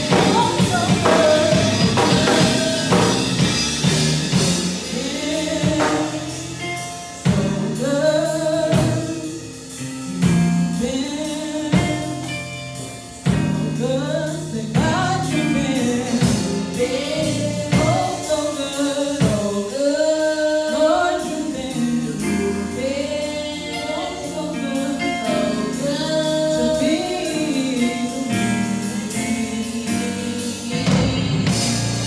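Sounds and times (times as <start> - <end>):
women singing gospel: 0.0 - 9.7, 10.7 - 12.4, 13.3 - 32.0
instrumental backing with beat: 0.0 - 32.0.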